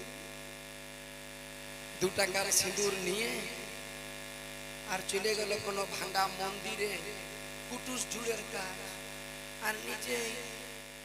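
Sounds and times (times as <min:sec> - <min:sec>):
electrical hum and buzz: 0:00.0 - 0:11.0.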